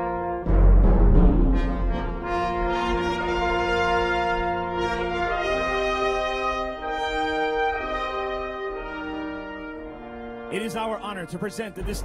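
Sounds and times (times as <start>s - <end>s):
brass ensemble playing held chords: 0.0s - 12.0s.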